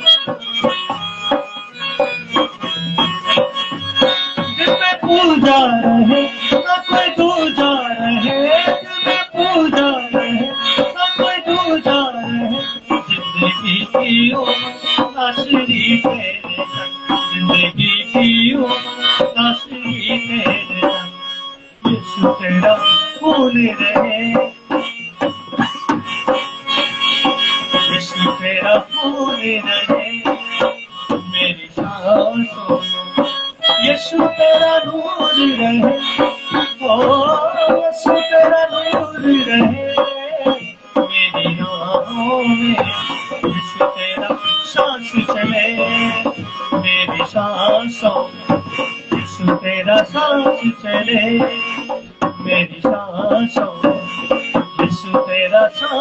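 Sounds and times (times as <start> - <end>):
hand drum: 0.0 - 21.2, 21.8 - 56.0
harmonium chords: 0.0 - 56.0
man singing: 0.0 - 56.0.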